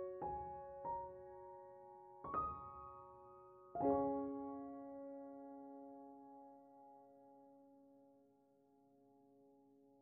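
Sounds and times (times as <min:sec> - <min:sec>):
soft piano chord: 0:00.0 - 0:08.0.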